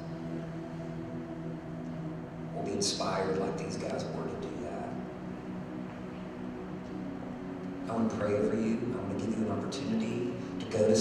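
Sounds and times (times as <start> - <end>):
keyboard sustained chord: 0.0 - 11.0.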